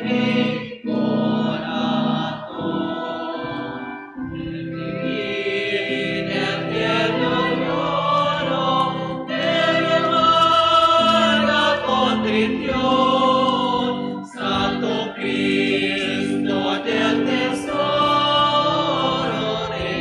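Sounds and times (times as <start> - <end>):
choir singing a slow hymn: 0.0 - 20.0.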